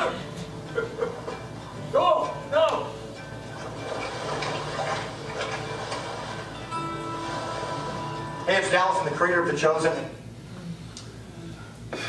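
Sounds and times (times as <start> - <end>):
film soundtrack music: 0.0 - 8.9
water-like noise: 3.5 - 6.6.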